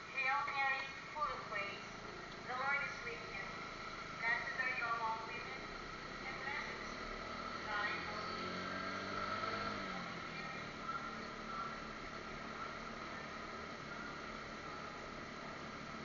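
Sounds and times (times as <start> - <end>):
motorcycle engine hum: 0.0 - 16.0.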